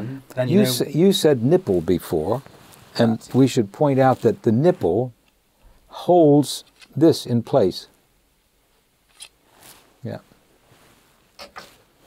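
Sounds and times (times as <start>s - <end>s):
soft rustle: 0.9s - 5.9s, 7.9s - 12.0s.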